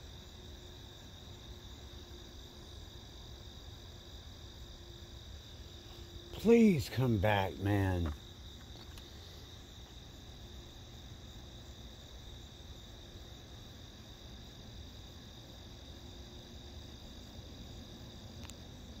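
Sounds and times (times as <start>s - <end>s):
crickets chirping: 0.0s - 19.0s.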